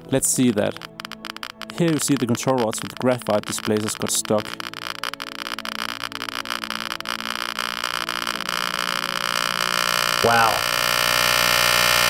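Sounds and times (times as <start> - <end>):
buzzing electronic drone: 0.0 - 12.0
dense rapid electronic clicking: 0.0 - 12.0.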